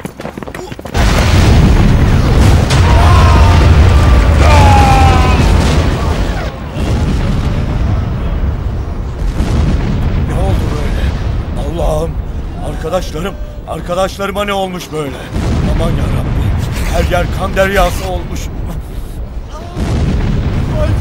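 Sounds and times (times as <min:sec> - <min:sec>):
shell explosion with deep rumble: 0:00.9 - 0:13.7, 0:15.2 - 0:21.0
men crying out: 0:02.7 - 0:06.6.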